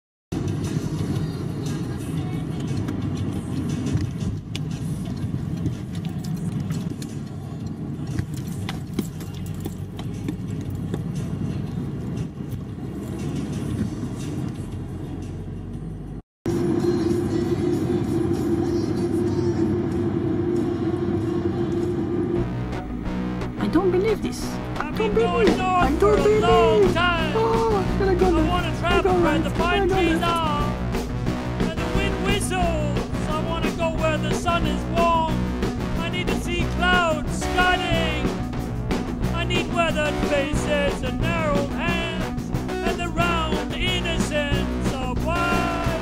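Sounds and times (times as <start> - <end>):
music playing: 0.3 - 46.0
car driving low rumble: 0.5 - 46.0
steady hum: 16.5 - 36.6.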